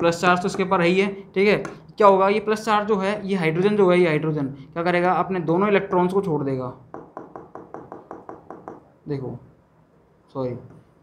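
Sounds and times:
taps on touchscreen: 6.9s - 8.9s.

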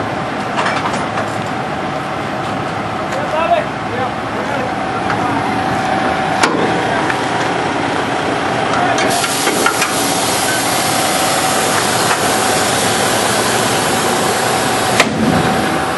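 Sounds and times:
constant whine: 0.0s - 15.9s
engine running: 0.0s - 15.9s.

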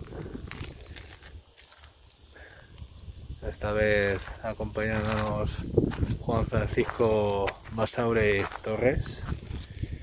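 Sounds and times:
low wind rumble on microphone: 0.0s - 1.5s, 2.6s - 10.0s
high-pitched insect buzz: 0.0s - 10.0s.

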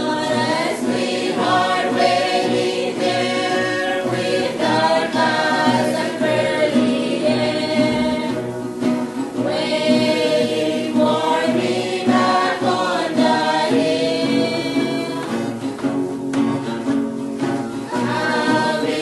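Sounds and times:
youth choir singing folk song: 0.0s - 19.0s.

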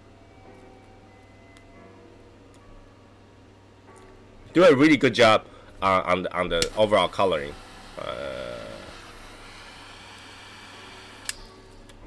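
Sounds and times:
torch lighter hissing: 6.6s - 12.0s
lighter click: 11.0s - 12.0s.

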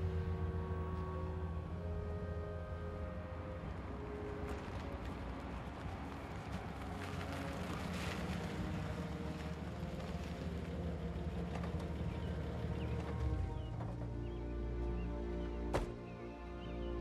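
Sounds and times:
faint birdsong: 0.0s - 17.0s
soft music: 0.0s - 17.0s
car engine running: 7.0s - 14.4s.

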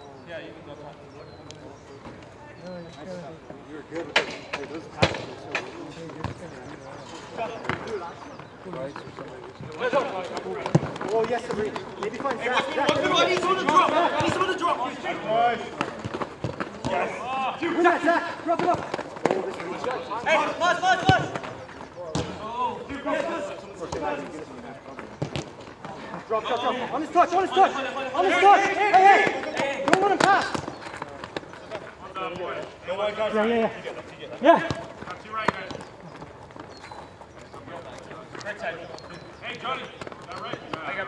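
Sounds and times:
players shouting: 9.7s - 24.7s, 25.8s - 36.5s.

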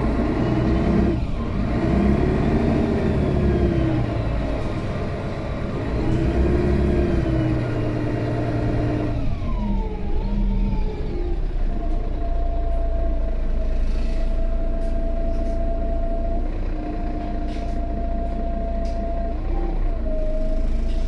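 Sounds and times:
bus diesel engine: 0.0s - 21.0s
low drone: 10.2s - 21.0s.

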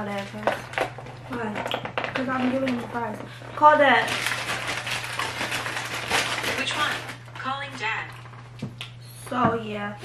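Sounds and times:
paper bag and plastic rustling: 0.0s - 8.5s
steady low hum: 0.0s - 10.0s.

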